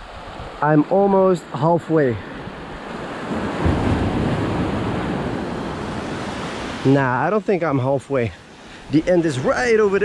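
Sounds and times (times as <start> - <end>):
small waves washing on sand: 0.0 - 10.0.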